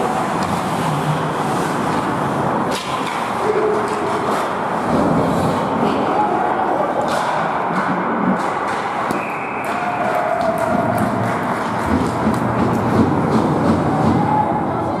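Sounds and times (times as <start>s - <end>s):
hockey sticks and puck clacking: 0.0s - 14.6s
people shouting: 9.2s - 11.4s, 13.7s - 15.0s.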